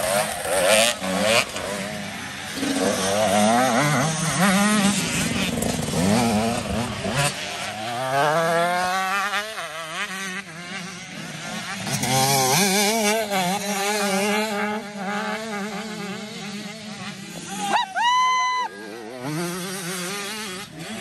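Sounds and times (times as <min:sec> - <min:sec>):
dirt bike engines revving: 0:00.0 - 0:21.0.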